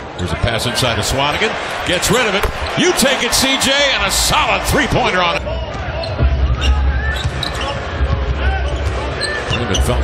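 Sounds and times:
arena crowd rumble: 0.2 - 10.0
basketball bouncing on hardwood: 2.4 - 2.7.

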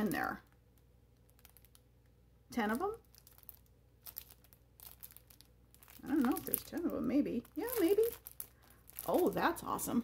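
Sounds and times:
plastic bag crinkling: 0.0 - 2.0, 2.7 - 10.0.

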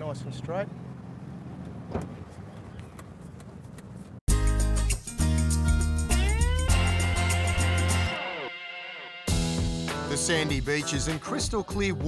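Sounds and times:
theme music with electric guitar: 4.3 - 12.0.

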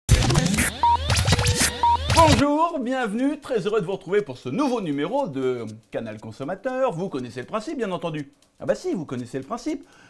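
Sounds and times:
short beeps: 0.7 - 2.4.

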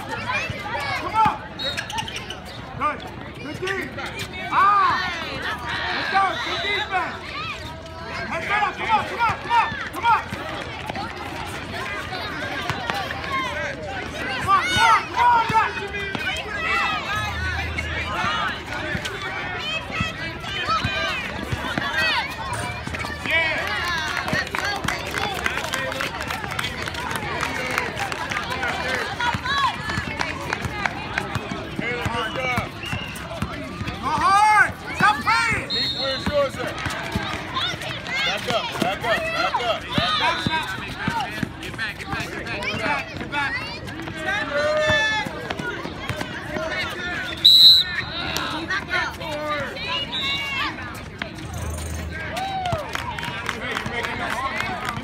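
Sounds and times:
shrill whistle-like sound: 1.6 - 2.4, 32.2 - 33.2, 35.6 - 36.3, 47.3 - 48.2.

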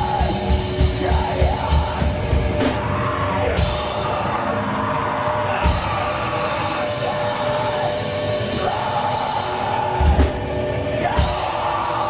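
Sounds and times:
heavy drum and bass hit: 0.0 - 4.6, 5.4 - 12.0
distorted guitars ringing: 0.0 - 12.0
heavy metal band playing live: 0.0 - 12.0.

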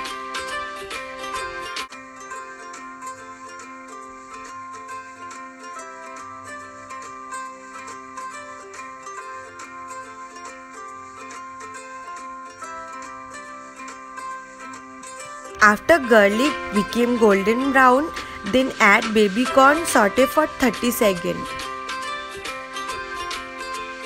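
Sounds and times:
light instrumental music: 0.0 - 24.0.

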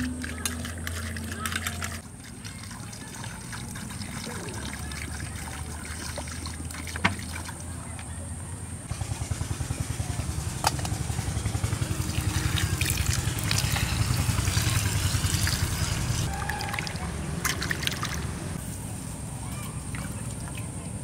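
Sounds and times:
water splashing in steel bowl: 0.0 - 7.7, 11.8 - 18.4.

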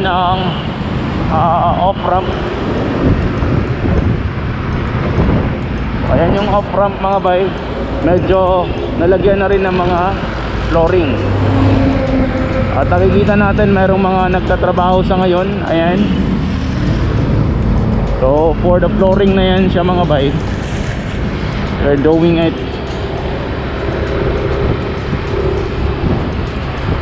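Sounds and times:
motorcycle engine: 0.0 - 27.0
passing traffic: 0.0 - 27.0
wind rush on microphone: 0.0 - 27.0.

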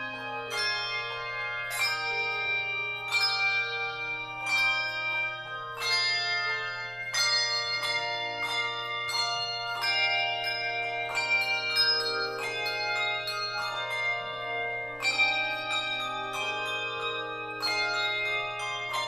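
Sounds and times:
handbell choir ringing: 0.0 - 19.0.

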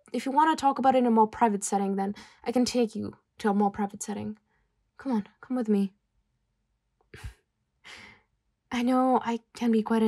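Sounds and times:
woman breathing: 7.9 - 8.3.

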